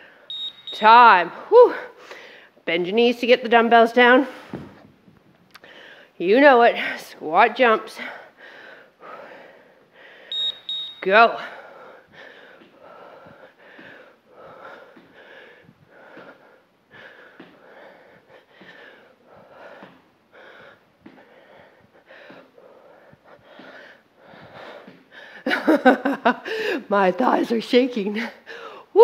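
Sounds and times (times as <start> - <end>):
woman breathing hard: 1.8 - 2.6, 5.6 - 6.2, 8.0 - 10.4, 11.4 - 25.5, 26.4 - 26.9, 28.4 - 28.9.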